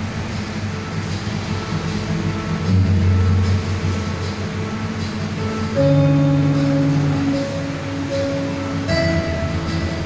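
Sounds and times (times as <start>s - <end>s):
train rumbling: 0.0s - 10.0s.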